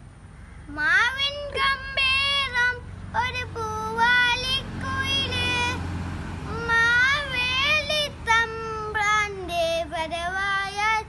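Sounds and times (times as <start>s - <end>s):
boy singing: 0.7s - 11.0s.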